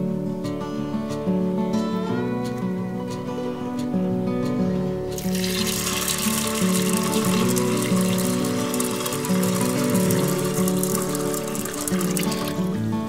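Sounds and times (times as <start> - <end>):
background music: 0.0 - 13.0
water pouring into pot: 5.1 - 12.8.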